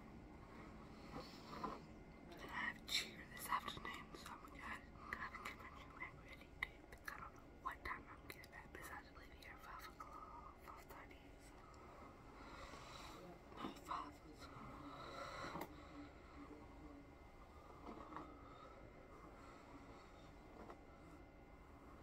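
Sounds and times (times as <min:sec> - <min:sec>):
woman whispering softly: 0:02.2 - 0:12.0, 0:13.0 - 0:17.2.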